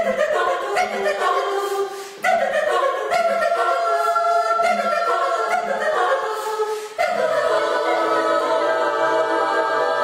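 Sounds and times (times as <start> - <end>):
women's choir singing: 0.0 - 10.0.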